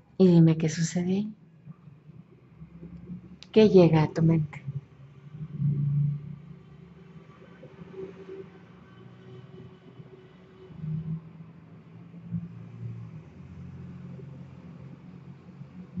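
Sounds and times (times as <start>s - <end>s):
low rumble with hum: 0.0s - 16.0s.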